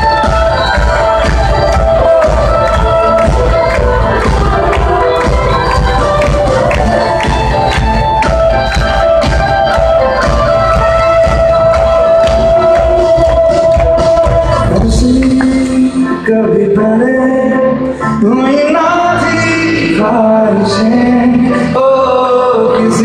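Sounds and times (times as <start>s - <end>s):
live band playing loud: 0.0s - 23.0s.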